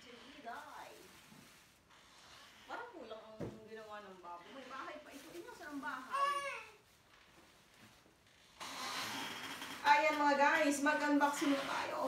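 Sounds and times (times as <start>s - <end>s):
plastic and paper wrapping rustling: 0.0s - 1.9s, 2.7s - 8.5s.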